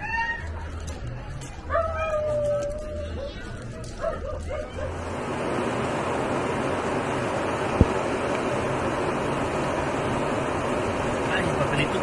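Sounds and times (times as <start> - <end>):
dog whining: 1.7 - 4.9.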